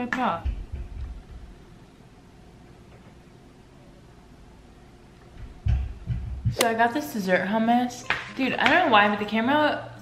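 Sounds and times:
soft low bump: 0:05.3 - 0:06.6.

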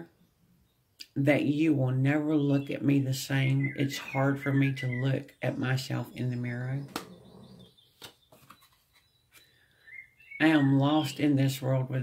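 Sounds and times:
playing cards clicking: 0:08.0 - 0:08.8.

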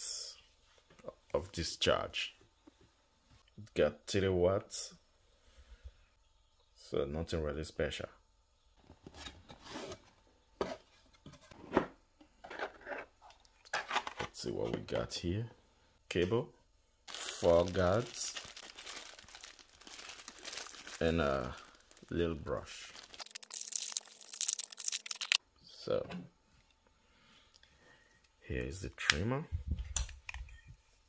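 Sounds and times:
plastic bag crinkling: 0:17.1 - 0:25.4.

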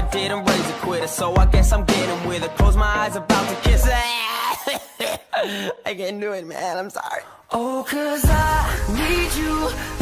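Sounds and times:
backing music: 0:00.0 - 0:04.2, 0:08.0 - 0:10.0
man coughing and clearing throat: 0:04.4 - 0:05.9.

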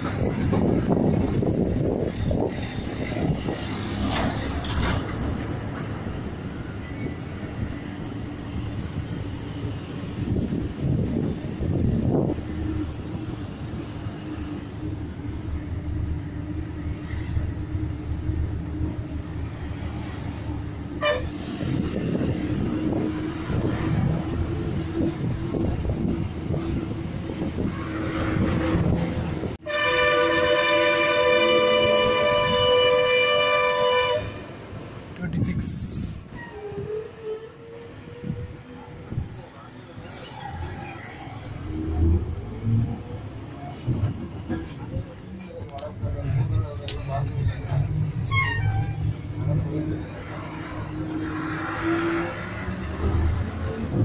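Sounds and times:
bus engine and road rumble: 0:00.0 - 0:54.0
loud bus horn: 0:20.9 - 0:21.5, 0:29.6 - 0:34.6.

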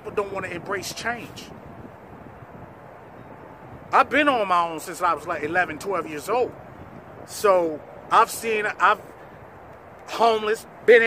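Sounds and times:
man speaking: 0:00.0 - 0:01.5, 0:03.9 - 0:06.6, 0:07.3 - 0:09.1, 0:10.1 - 0:11.0
low outdoor background hiss: 0:00.0 - 0:11.0.

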